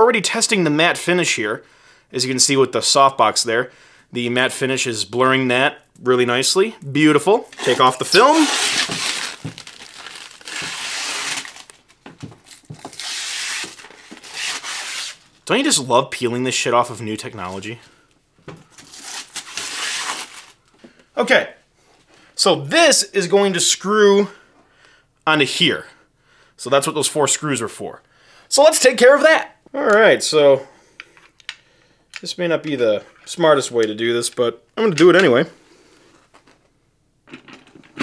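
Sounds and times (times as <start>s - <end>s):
plastic film rustling: 7.4s - 15.5s, 18.6s - 20.7s.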